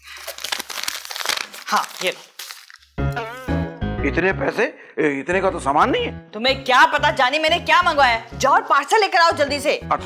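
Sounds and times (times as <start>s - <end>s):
paper rustling and crinkling: 0.0s - 2.9s.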